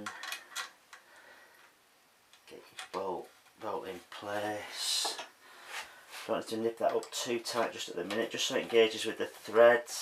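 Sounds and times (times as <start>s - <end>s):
man speaking: 2.4s - 5.3s, 6.2s - 10.0s.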